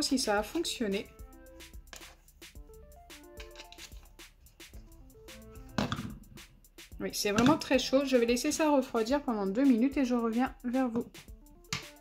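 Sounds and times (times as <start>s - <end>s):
melodic background music: 0.0s - 12.0s.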